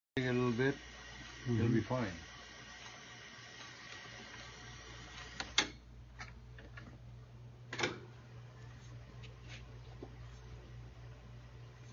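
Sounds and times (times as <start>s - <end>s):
tape recorder reels running: 0.2s - 5.8s.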